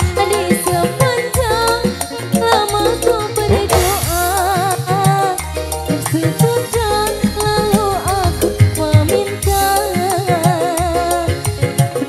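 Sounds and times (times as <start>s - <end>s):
bass and drum beat: 0.0s - 12.0s
high vibrato melody: 1.6s - 10.2s.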